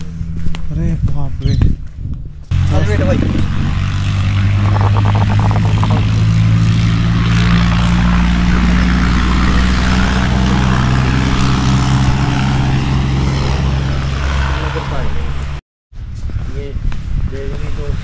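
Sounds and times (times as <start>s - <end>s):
engine droning steadily: 2.4s - 15.6s.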